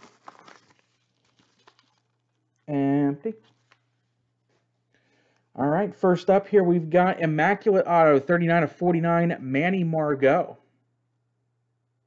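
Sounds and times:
paper envelope rustling: 0.0s - 2.7s, 3.4s - 4.2s.

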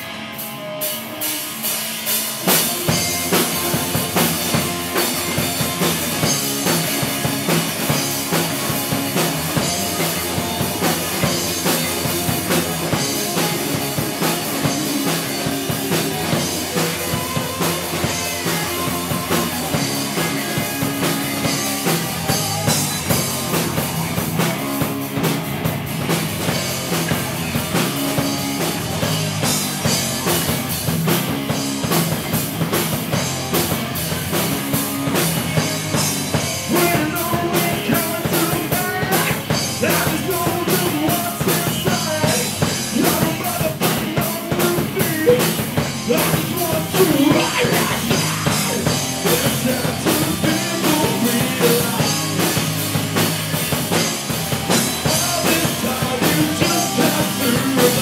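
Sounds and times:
bass guitar: 0.0s - 58.0s
drum kit: 0.0s - 58.0s
electric guitars: 0.0s - 58.0s.

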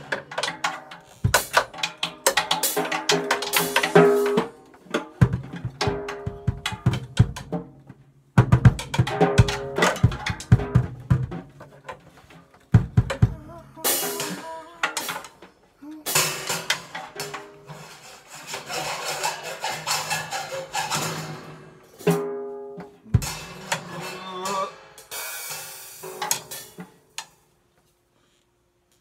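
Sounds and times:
drum kit played with sticks: 0.0s - 27.4s.

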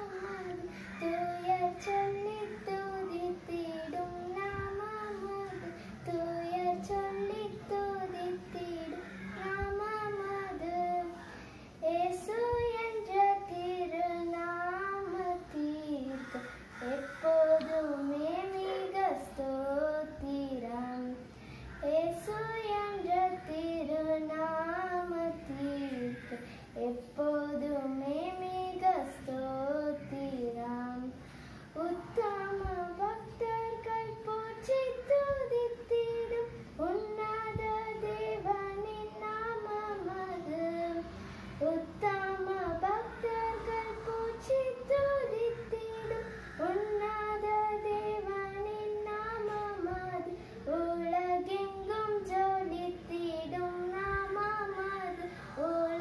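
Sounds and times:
girl singing unaccompanied: 0.0s - 56.0s.

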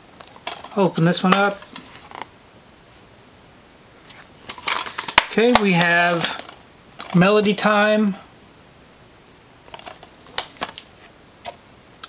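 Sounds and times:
plastic case rustling: 0.2s - 2.3s, 4.0s - 7.2s, 9.7s - 11.7s.

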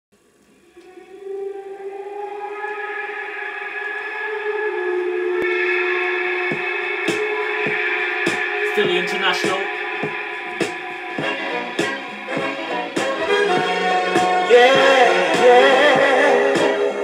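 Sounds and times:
soul record held chords: 0.1s - 17.0s
drum hits: 6.5s - 15.0s.

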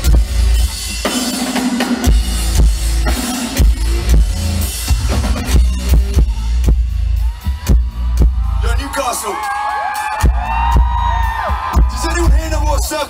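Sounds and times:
rock band playing live: 0.0s - 13.0s
crowd whooping and cheering: 7.0s - 13.0s.

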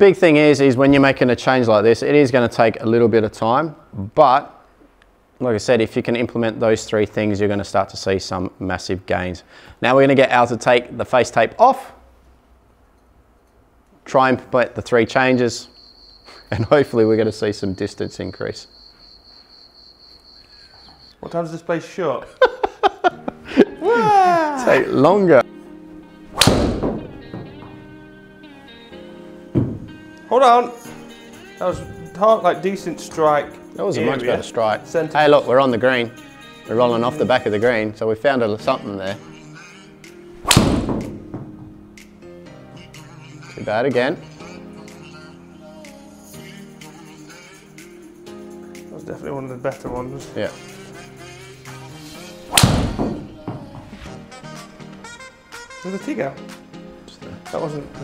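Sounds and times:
background music: 21.3s - 58.0s
golf ball strike crack: 26.4s - 27.1s, 40.4s - 41.2s, 52.5s - 53.2s
dull thud: 26.4s - 27.8s, 29.5s - 30.0s, 40.4s - 41.8s, 52.5s - 54.0s.

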